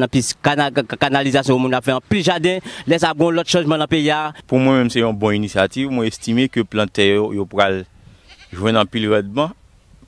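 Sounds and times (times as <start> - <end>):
man speaking: 0.0 - 7.9, 8.6 - 9.6.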